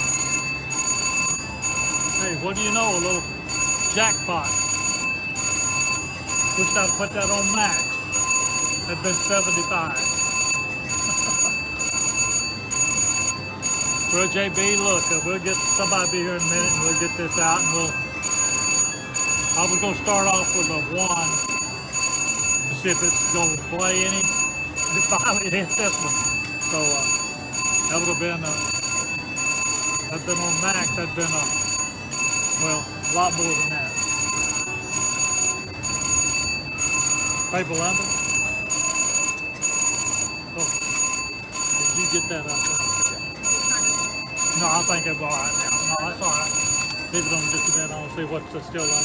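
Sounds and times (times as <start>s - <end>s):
slot machine alarm ringing: 0.0s - 49.0s.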